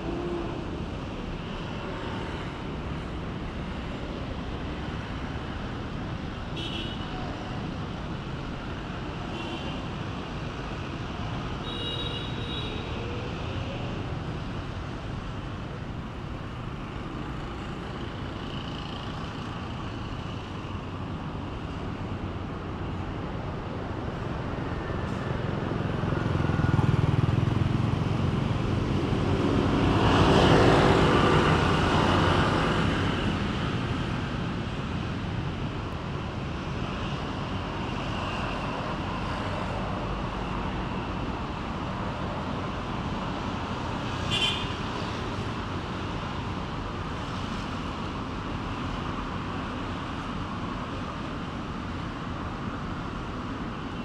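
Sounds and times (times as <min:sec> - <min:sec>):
road traffic noise: 0:00.0 - 0:54.0.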